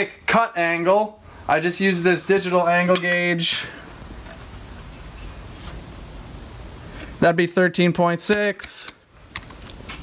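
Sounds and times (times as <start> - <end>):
low shop hum: 0.0 - 10.0.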